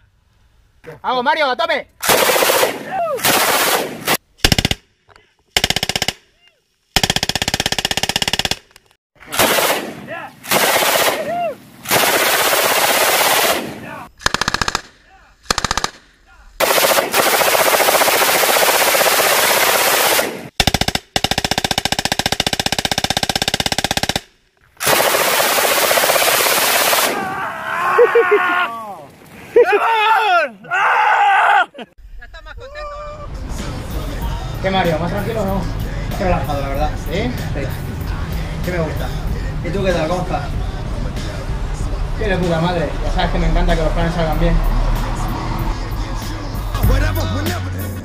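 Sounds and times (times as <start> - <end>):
machine gun firing bursts: 2.0 - 4.8, 5.6 - 6.2, 7.0 - 11.3, 11.9 - 16.0, 16.6 - 27.2.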